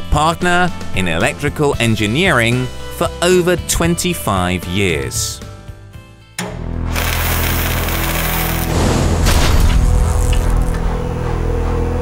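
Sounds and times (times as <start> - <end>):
lit fuse fizzing: 6.9 - 8.9.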